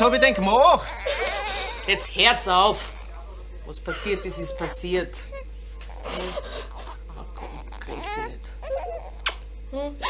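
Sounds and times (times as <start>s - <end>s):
woman sobbing: 0.0s - 2.1s, 3.8s - 7.3s
woman wailing: 3.8s - 5.4s
woman whimpering: 3.8s - 10.0s.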